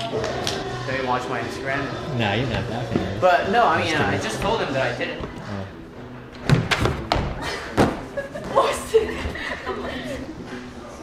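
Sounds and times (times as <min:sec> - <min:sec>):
voices and laughter: 0:07.4 - 0:10.8.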